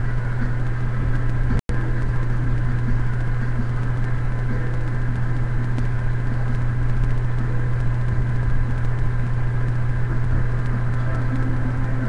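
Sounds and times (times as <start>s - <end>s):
constant hiss: 0.0s - 12.0s
steady low hum: 0.0s - 12.0s.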